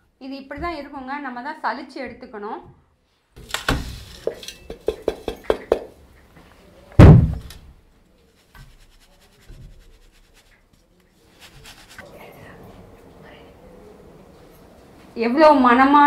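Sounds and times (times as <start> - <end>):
metal jar tapping on sieve: 4.2 - 5.9
loud metal thunk: 7.0 - 7.7.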